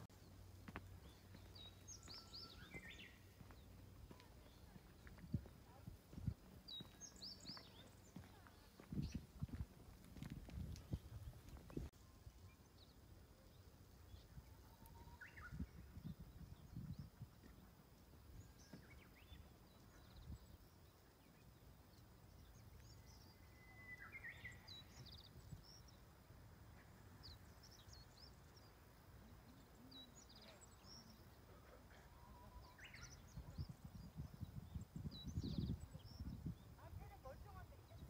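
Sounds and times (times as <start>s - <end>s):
small birds chirping: 0.0s - 38.0s.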